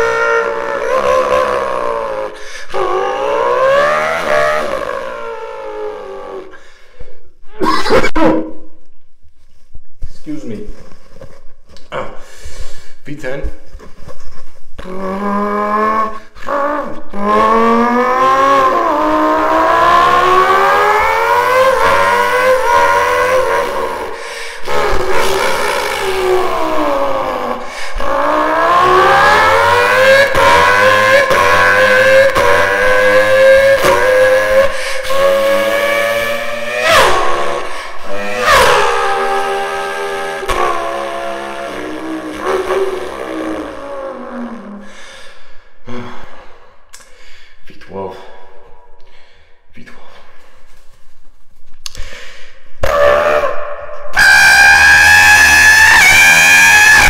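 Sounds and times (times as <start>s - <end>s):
man imitating racing engine: 0.0s - 6.6s, 14.8s - 45.0s, 54.2s - 57.0s.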